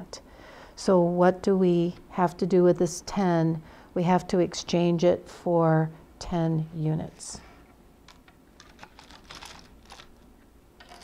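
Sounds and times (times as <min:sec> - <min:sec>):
wooden tiles clicking: 0:08.1 - 0:10.1.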